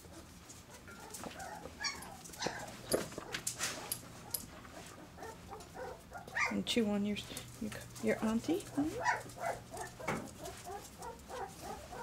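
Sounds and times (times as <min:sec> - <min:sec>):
puppy whimpering: 0:01.3 - 0:02.7
claws clicking on tiled floor: 0:07.4 - 0:11.8.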